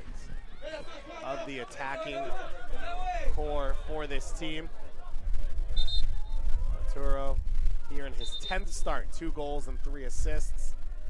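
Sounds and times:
faint distant shout: 0:00.3 - 0:03.3
wind rumble on microphone: 0:02.5 - 0:11.0.

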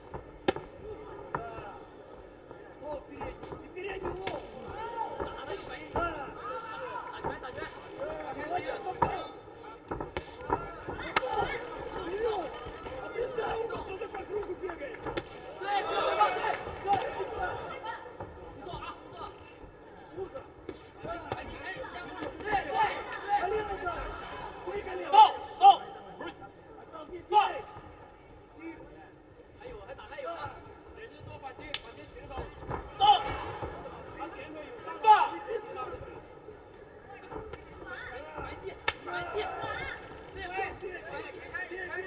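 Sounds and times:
voices talking and calling out: 0:00.0 - 0:42.0.

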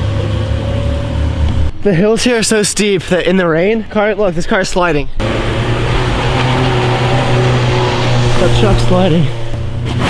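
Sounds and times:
car engine running hard: 0:00.0 - 0:01.8, 0:05.2 - 0:10.0.

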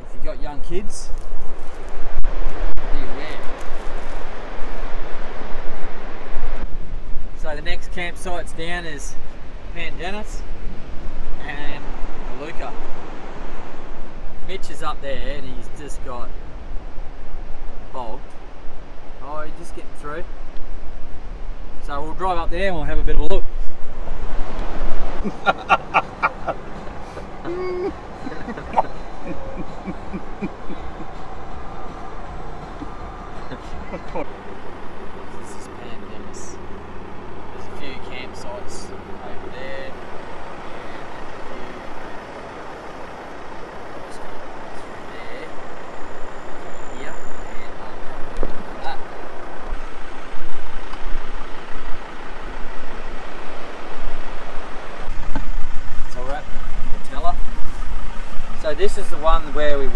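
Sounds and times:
vehicle engine and tyres on sand: 0:00.0 - 0:59.9
low drone: 0:24.2 - 0:53.4
voices: 0:25.0 - 0:59.9.

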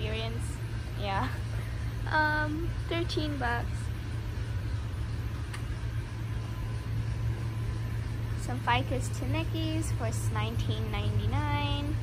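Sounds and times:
low background rumble: 0:00.0 - 0:12.0
faint click: 0:05.5 - 0:05.7.

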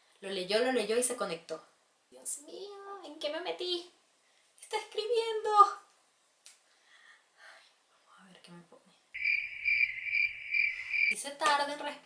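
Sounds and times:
cricket chirping: 0:09.2 - 0:11.2.

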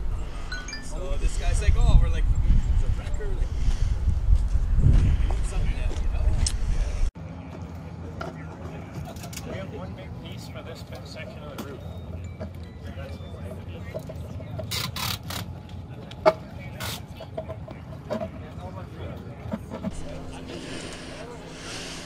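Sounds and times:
people talking indistinctly: 0:08.2 - 0:22.0
low steady hum: 0:19.9 - 0:22.0.

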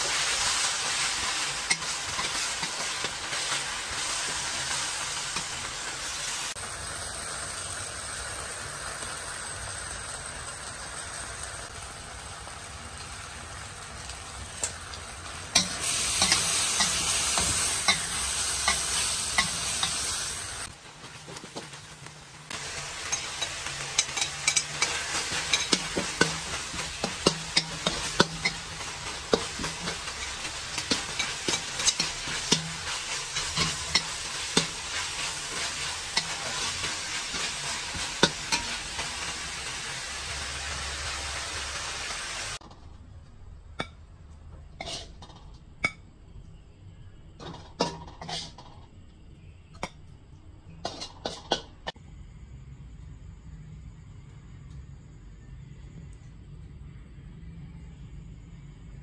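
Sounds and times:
metal spatula scraping a pan: 0:00.0 - 0:06.5, 0:15.5 - 0:20.7, 0:22.7 - 0:39.6, 0:44.8 - 0:45.4, 0:47.4 - 0:48.8
meat sizzling in a wok: 0:00.0 - 0:42.6.

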